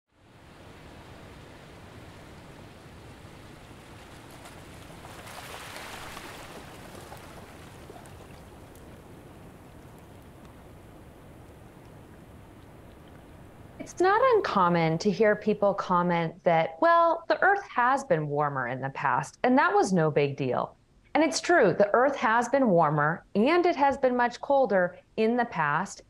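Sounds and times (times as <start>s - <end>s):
wind: 0.1s - 15.0s
sea water rushing: 0.2s - 13.8s
faint clicks: 8.0s - 10.8s, 11.4s - 13.4s.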